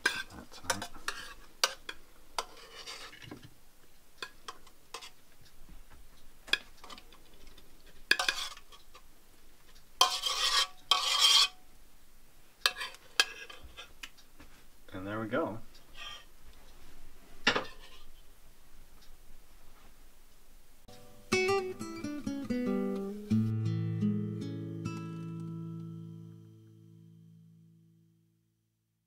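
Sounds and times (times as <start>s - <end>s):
utensil clinking on metal pot: 8.1s - 8.7s.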